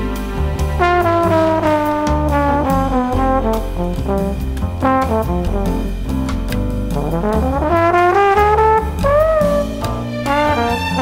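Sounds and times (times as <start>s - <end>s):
double bass line: 0.0s - 11.0s
drums with cymbal strokes: 0.0s - 11.0s
horn melody with bending notes: 0.0s - 11.0s.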